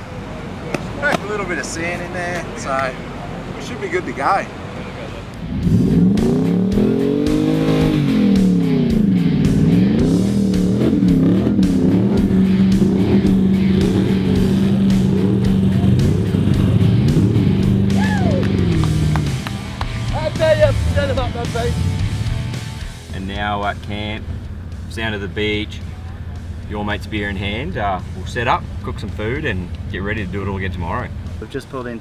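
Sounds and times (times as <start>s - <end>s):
engine revving hard: 5.4s - 19.4s, 20.6s - 23.0s.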